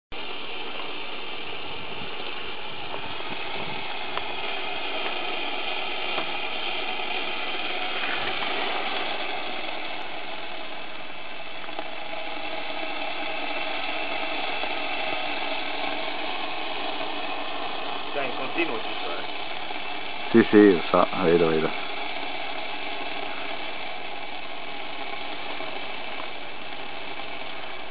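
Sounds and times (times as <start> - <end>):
steam hissing from pipe: 0.1 - 27.9.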